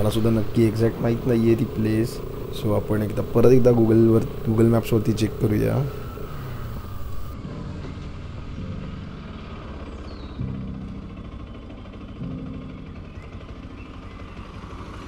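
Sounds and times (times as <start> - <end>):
motorcycle engine idling: 0.0 - 15.0.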